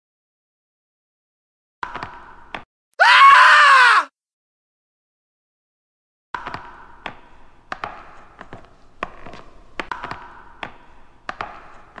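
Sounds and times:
person screaming high-pitched: 0:03.0 - 0:04.2.

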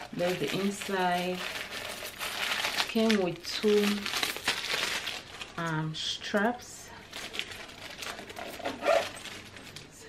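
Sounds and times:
rustling and crinkling of handbag: 0:00.0 - 0:10.0.

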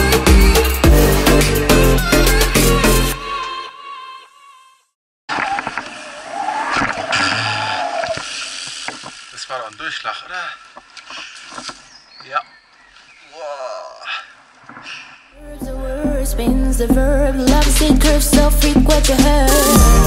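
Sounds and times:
person calling out: 0:13.4 - 0:14.2.

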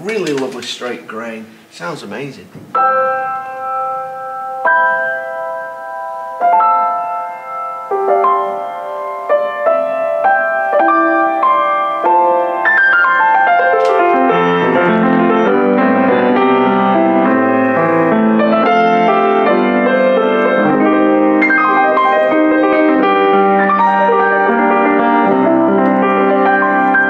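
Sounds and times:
grand piano playing: 0:00.0 - 0:27.0.

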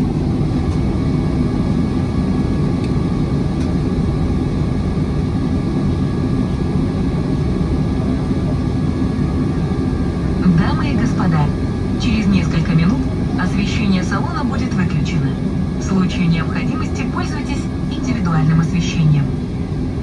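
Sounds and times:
jet engines rumbling in cabin: 0:00.0 - 0:20.0.

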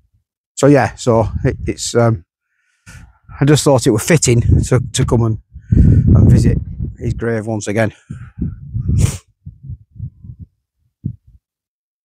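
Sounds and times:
microphone rumbling bursts: 0:00.9 - 0:02.0, 0:02.9 - 0:11.4
sharp breath through nose: 0:02.4 - 0:03.3, 0:05.6 - 0:06.1, 0:08.0 - 0:09.4
breathy exhalations: 0:02.5 - 0:03.3, 0:05.5 - 0:06.1, 0:08.0 - 0:10.4.

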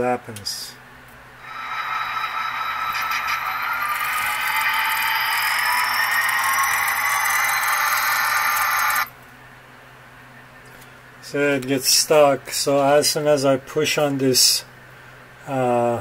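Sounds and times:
model train locomotive whine: 0:01.4 - 0:09.1.

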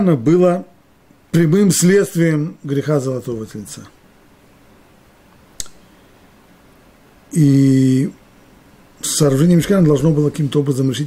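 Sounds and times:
short sharp click: 0:05.6 - 0:05.8.

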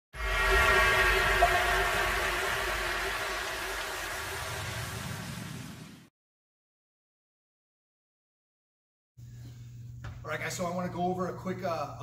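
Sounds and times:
low rumble: 0:00.0 - 0:06.1
held chord-like music tone: 0:00.2 - 0:04.8.

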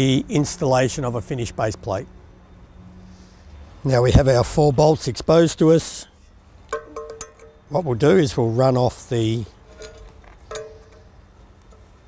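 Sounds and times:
spanner clinking on metal: 0:06.7 - 0:08.1, 0:09.6 - 0:11.9.

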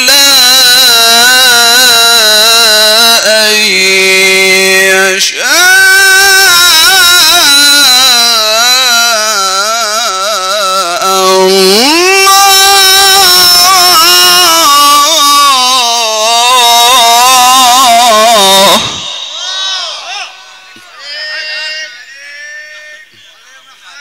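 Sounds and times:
man chanting into microphone: 0:00.0 - 0:23.8.

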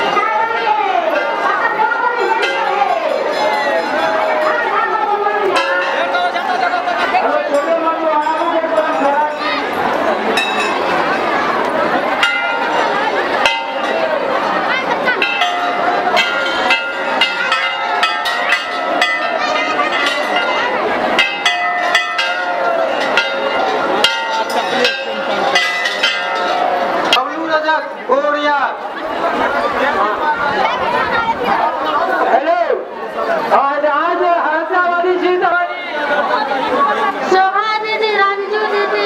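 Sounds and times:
brass temple bells ringing: 0:00.0 - 0:28.0
crowd chatter: 0:00.0 - 0:39.0.

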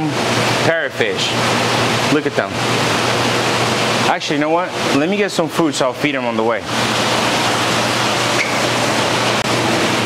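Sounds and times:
aquarium water rushing hiss: 0:00.0 - 0:10.0.

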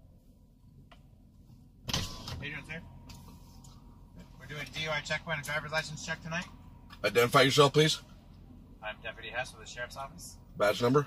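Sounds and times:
outside noise: 0:00.0 - 0:11.0.

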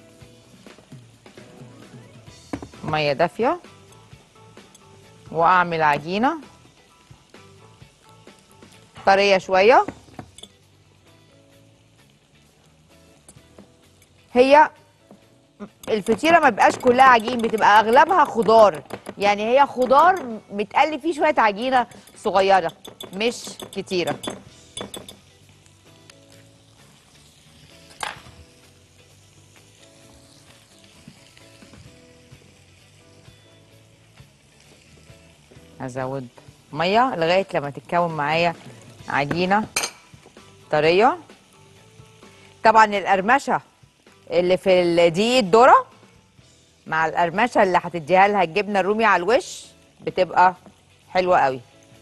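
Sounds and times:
soft background music: 0:00.0 - 0:52.0
utensil scraping glass bowl: 0:15.8 - 0:19.0
whisk clinking against glass bowl: 0:15.8 - 0:19.1, 0:21.6 - 0:25.2.

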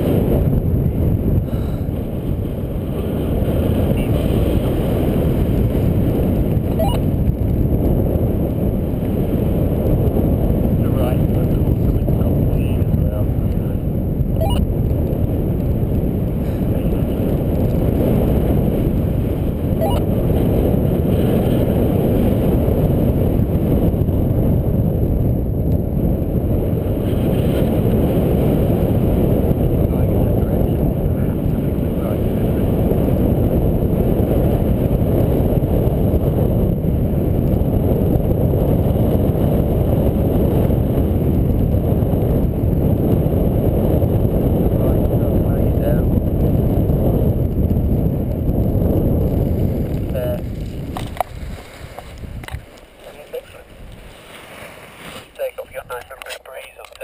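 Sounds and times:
wind noise on microphone: 0:00.0 - 0:57.0.

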